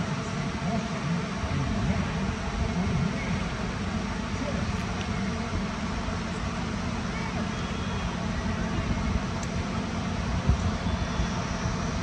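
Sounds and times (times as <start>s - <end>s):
murmur of outdoor crowd: 0.0s - 12.0s
steady low rumble: 0.0s - 12.0s.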